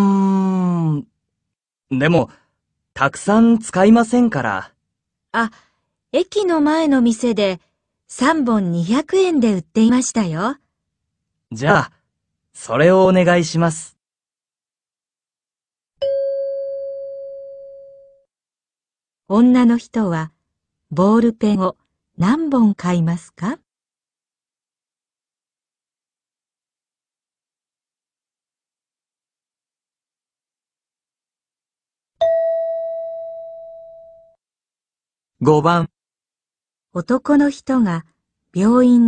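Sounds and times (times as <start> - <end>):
bell-like chime: 16.0 - 18.2.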